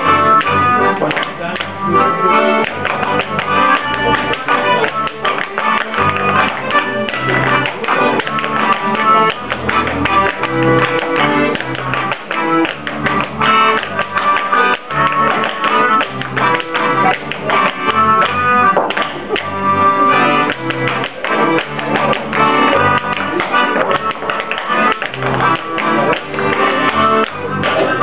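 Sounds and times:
accordion folk dance tune: 0.0s - 28.0s
clogs tapping on wooden floor: 2.6s - 19.6s, 20.4s - 28.0s.

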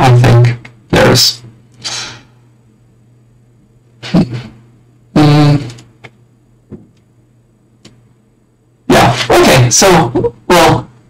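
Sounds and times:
steady low hum: 0.0s - 11.0s
distorted voice bursts: 4.0s - 5.8s.

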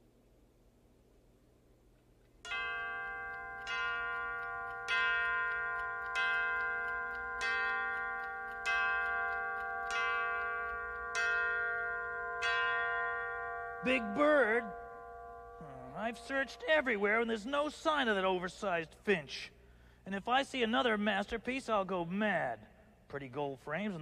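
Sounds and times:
clock bell striking: 2.4s - 18.2s.

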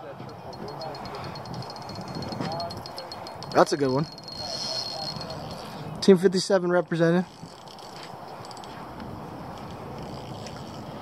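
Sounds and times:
fishing reel whirring: 0.3s - 6.0s, 7.2s - 11.0s.

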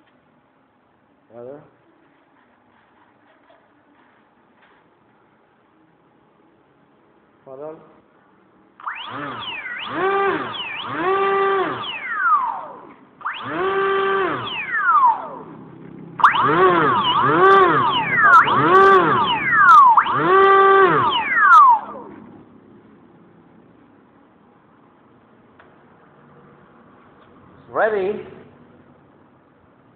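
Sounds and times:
electric motor whine: 8.8s - 15.6s, 16.2s - 22.1s.

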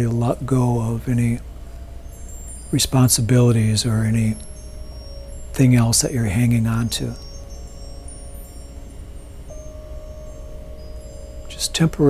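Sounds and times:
ambient chime-like music: 0.0s - 12.0s
low hum: 0.0s - 12.0s.

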